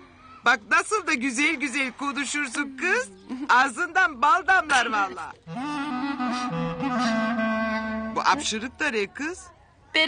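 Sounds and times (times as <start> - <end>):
lower accompanying line: 4.4 - 8.9
wind instrument long notes: 5.4 - 8.6.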